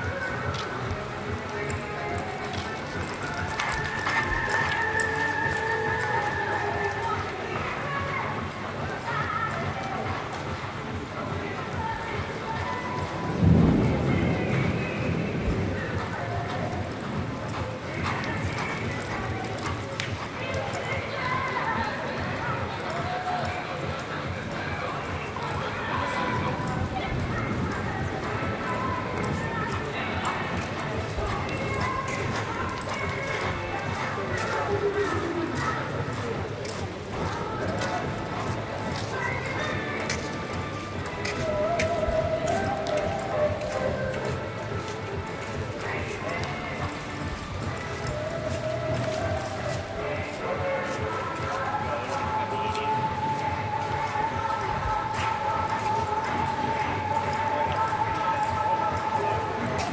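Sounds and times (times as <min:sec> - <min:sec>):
background music: 0:00.0 - 0:59.9
horse hooves on sand: 0:00.0 - 0:59.9
voices: 0:00.0 - 0:59.9.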